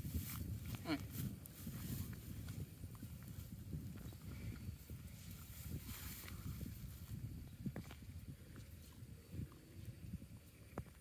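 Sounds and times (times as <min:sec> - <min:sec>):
buffalo chewing dry grass: 0:00.0 - 0:10.8
wind rumble on microphone: 0:00.0 - 0:11.0.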